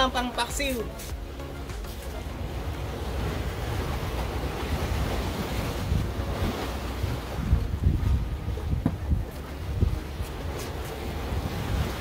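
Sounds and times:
sea wash: 0.0 - 12.0
wind buffeting microphone: 2.4 - 12.0.

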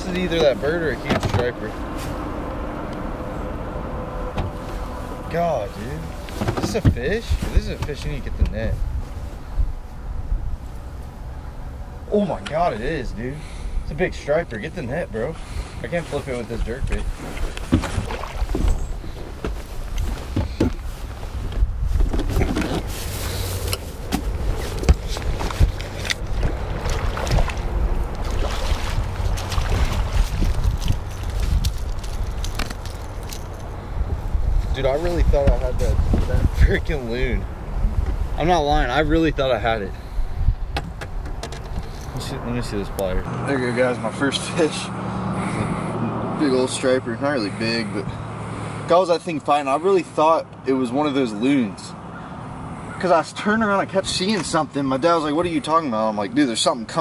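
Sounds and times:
low rumble on microphone: 16.4 - 43.3.

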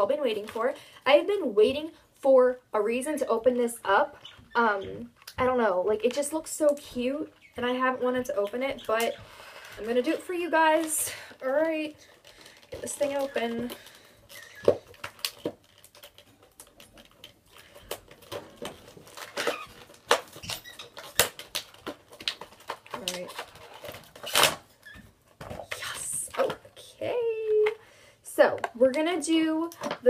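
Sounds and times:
packaging crinkling and tearing: 9.4 - 25.0.

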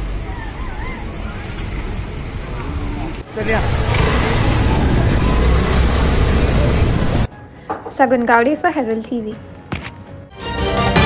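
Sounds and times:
deep traffic rumble: 0.0 - 7.3
scooters and cars passing: 0.1 - 7.3.

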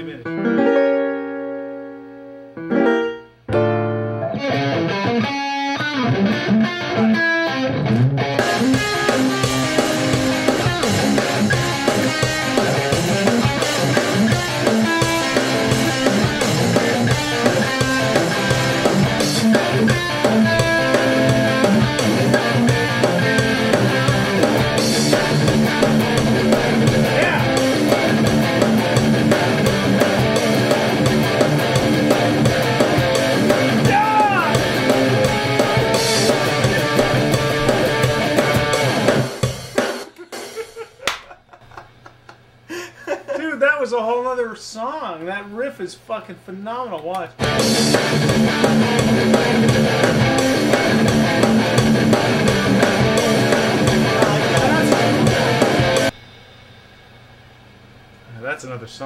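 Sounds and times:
electric guitar riffing: 3.5 - 40.2, 47.4 - 56.2
rock drum beat: 8.2 - 41.0, 47.4 - 56.2.

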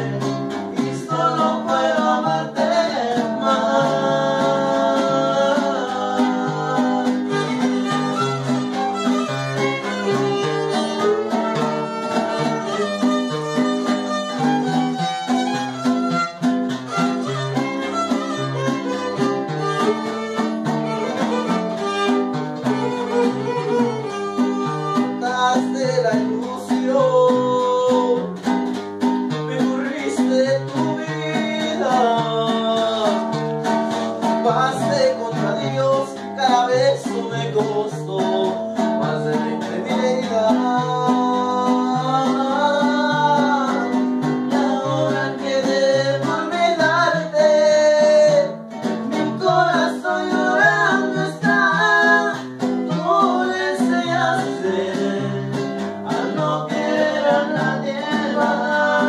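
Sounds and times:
strummed guitars: 0.0 - 59.0
wavering violin melody: 6.5 - 25.5.

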